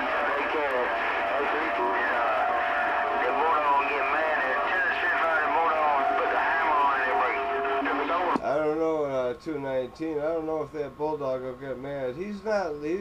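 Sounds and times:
garbled radio voice in static: 0.0s - 8.4s
man speaking into microphone: 0.0s - 13.0s.

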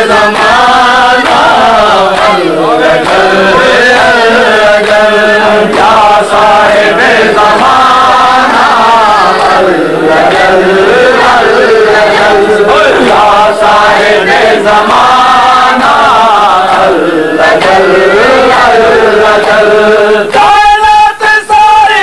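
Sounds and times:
men chanting together: 0.0s - 22.0s.

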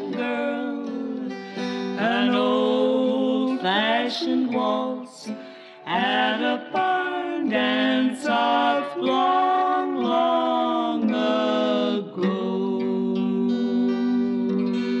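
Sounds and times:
acoustic guitar: 0.0s - 15.0s
two women singing in harmony: 0.0s - 15.0s.

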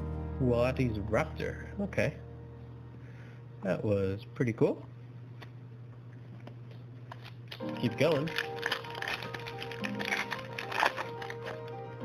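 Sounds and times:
background music: 0.0s - 3.6s, 7.5s - 12.0s
foil wrapper crinkling: 7.0s - 12.0s.

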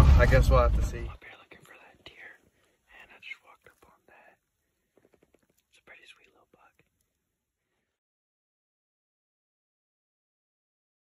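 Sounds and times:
person whispering: 1.1s - 4.5s, 5.6s - 7.0s.

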